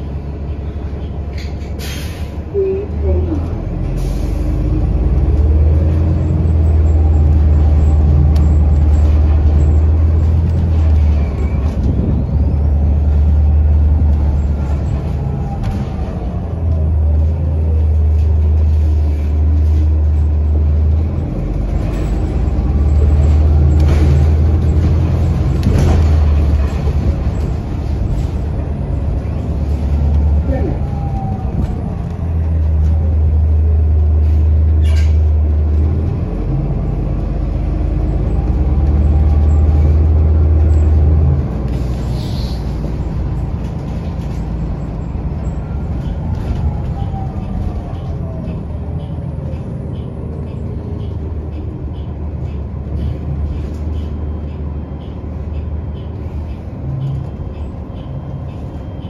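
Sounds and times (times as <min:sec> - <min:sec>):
bus engine drone: 0:00.0 - 0:59.0.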